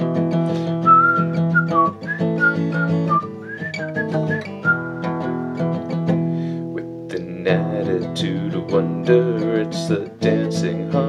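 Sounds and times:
acoustic guitar strumming: 0.0 - 11.0
person whistling a melody: 0.7 - 5.6.

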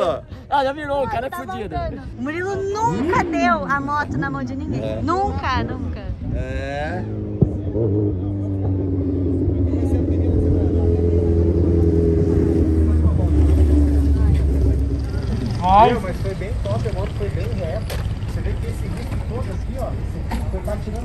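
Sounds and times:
motorcycle engine at low revs: 6.2 - 19.5.

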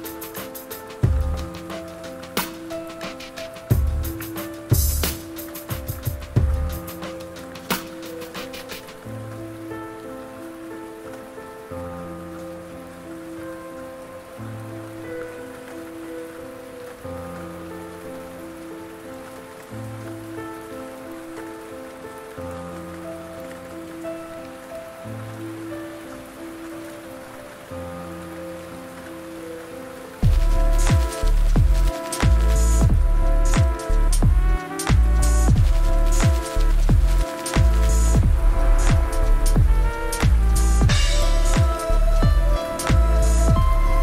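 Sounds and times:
drum hits: 0.0 - 9.0, 30.2 - 43.9
lofi hip hop chords and bass: 0.0 - 9.0, 30.2 - 44.0
rain pattering: 0.0 - 44.0.

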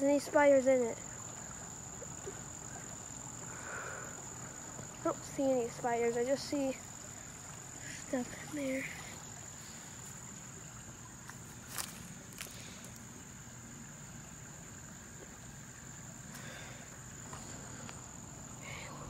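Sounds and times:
insects calling: 0.0 - 19.0.

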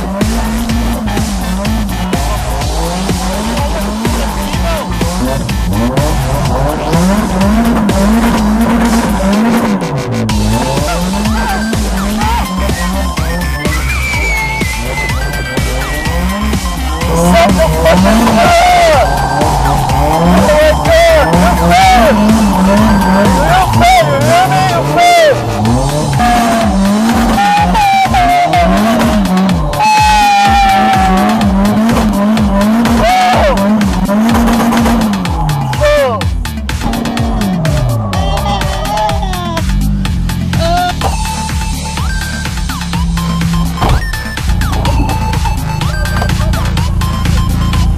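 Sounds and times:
background music: 0.0 - 47.9
car engine revving: 0.0 - 47.9
tyres squealing on asphalt: 0.0 - 47.9.

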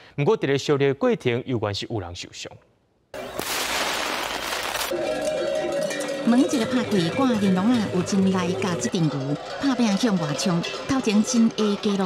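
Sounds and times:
rocket rushing hiss: 3.4 - 4.9.

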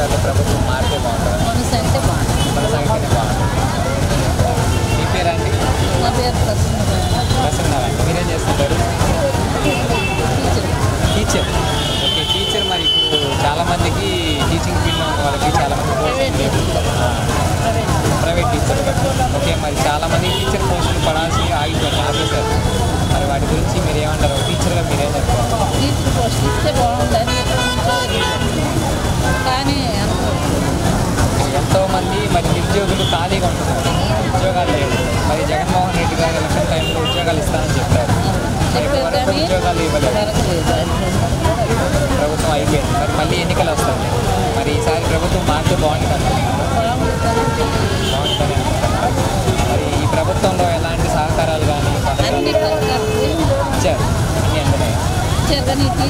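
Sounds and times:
street traffic rumbling: 0.0 - 56.0
woman talking into a microphone: 1.4 - 2.3, 29.3 - 30.6, 38.7 - 40.8, 52.2 - 53.5, 55.4 - 56.0.

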